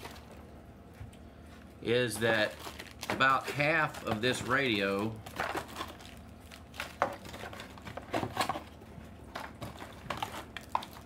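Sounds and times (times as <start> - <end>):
cardboard and plastic rustling: 0.0 - 0.4, 1.6 - 11.0.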